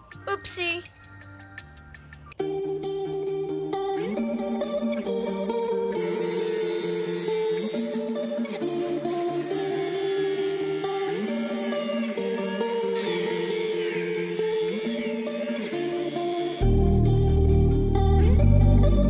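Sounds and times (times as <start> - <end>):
background music: 0.0 - 19.0
angle grinder grinding metal: 6.0 - 16.7.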